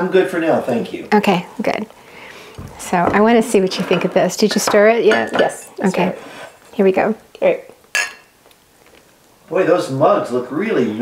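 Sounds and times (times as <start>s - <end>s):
spoon clinking on ceramic mug: 8.0s - 8.3s.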